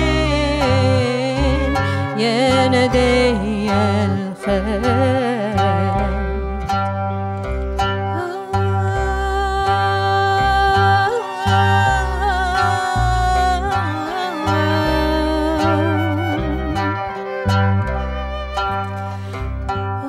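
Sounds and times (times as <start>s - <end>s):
woman singing: 0.0s - 6.8s, 8.1s - 17.3s
upright bass notes: 0.0s - 20.0s.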